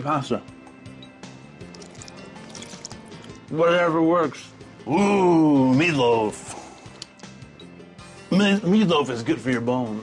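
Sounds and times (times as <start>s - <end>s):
background music: 0.0s - 10.0s
milk trickling and splashing: 1.7s - 3.4s.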